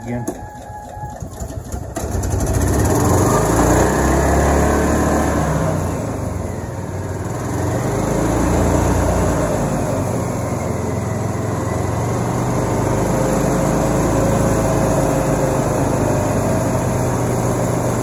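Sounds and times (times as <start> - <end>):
starter cranking engine: 0.0 - 4.1
gas engine running: 0.0 - 18.0.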